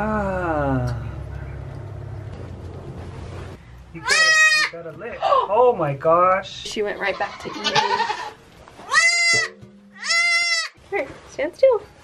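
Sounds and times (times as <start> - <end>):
steady low hum: 0.0 - 5.2, 8.3 - 12.0.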